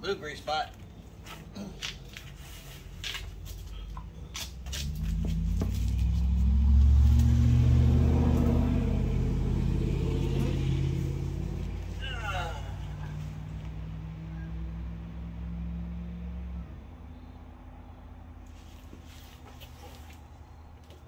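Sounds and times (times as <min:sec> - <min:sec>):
vehicle engine rumbling past: 0:03.4 - 0:21.0.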